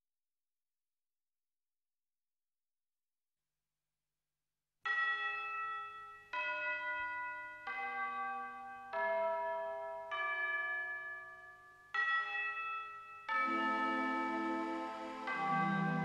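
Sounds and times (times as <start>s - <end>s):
bell-like melody: 4.9s - 16.0s.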